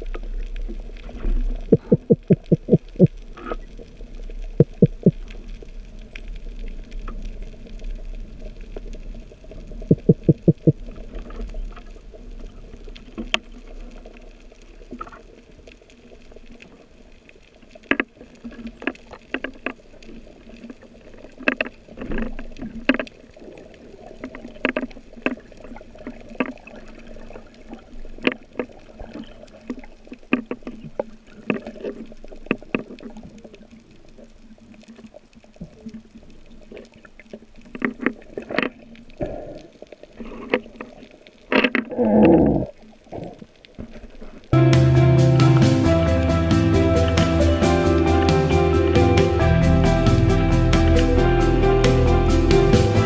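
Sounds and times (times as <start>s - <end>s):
rush of water and bubbles: 0.0s - 53.0s
muffled clicks and knocks: 17.8s - 19.8s, 20.6s - 23.2s, 24.2s - 26.7s, 41.5s - 42.4s
background music: 44.6s - 53.0s.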